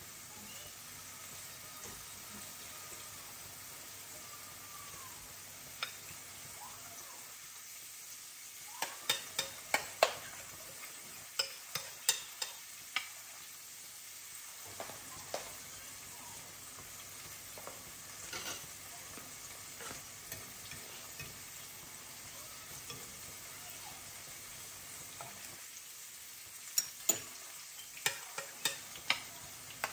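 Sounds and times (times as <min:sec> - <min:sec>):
batter sizzling in a pan: 0:00.0 - 0:29.9.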